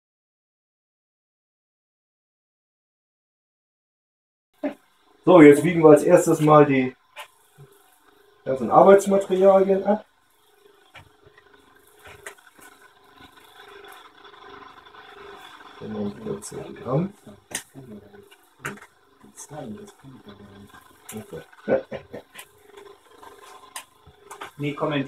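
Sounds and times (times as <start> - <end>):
faint steady hum: 4.6 - 25.0
small items clicking and knocking: 17.4 - 19.4.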